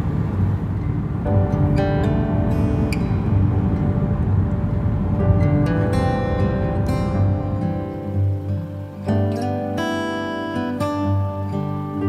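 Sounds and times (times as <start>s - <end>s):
car driving heard from inside: 0.0s - 7.9s.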